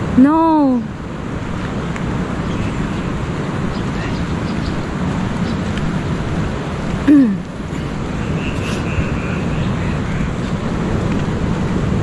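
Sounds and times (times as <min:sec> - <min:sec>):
surf: 0:00.0 - 0:12.0
wind on microphone: 0:00.0 - 0:12.0.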